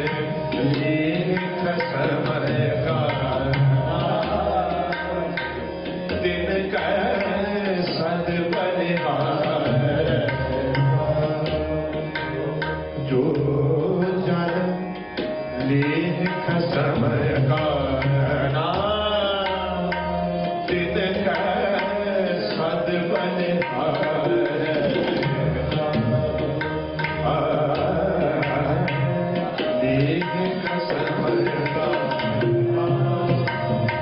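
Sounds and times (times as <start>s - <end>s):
bowed string instruments: 0.0s - 34.0s
tabla strokes: 0.0s - 34.0s
man singing melismatic line: 15.6s - 34.0s.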